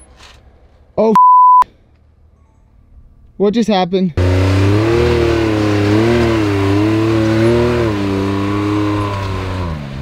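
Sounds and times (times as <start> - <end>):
censor bleep: 1.1 - 1.6.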